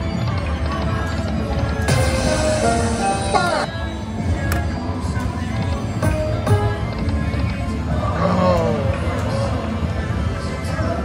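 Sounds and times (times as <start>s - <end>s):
slot machine reel-spin music: 0.0s - 3.7s.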